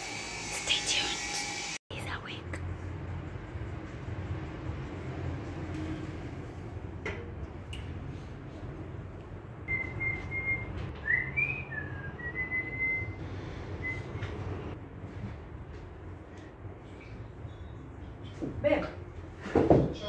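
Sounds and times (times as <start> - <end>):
person whistling a tune: 9.7 - 13.2.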